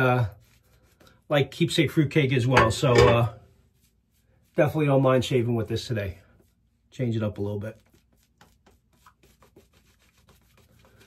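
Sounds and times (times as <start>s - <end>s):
shaving brush swishing on skin: 3.5s - 11.0s.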